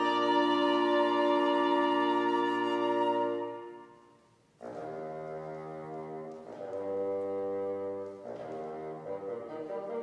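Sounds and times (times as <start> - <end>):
bassoon low notes: 0.0 - 10.0
french horn low notes: 0.0 - 10.0.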